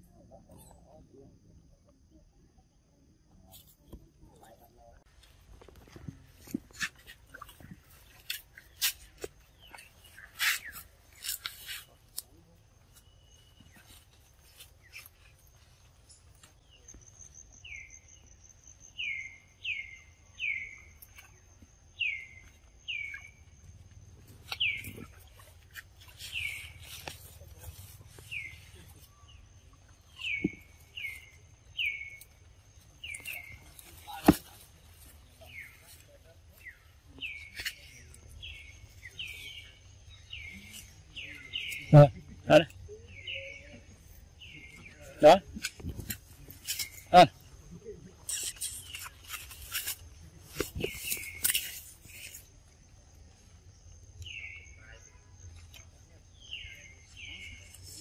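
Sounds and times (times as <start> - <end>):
bird chirping: 3.4 - 58.0.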